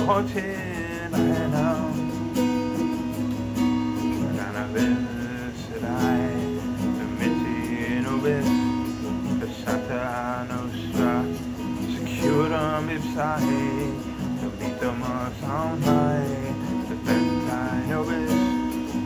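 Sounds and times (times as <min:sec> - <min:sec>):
man singing: 0:00.0 - 0:02.9, 0:03.9 - 0:19.0.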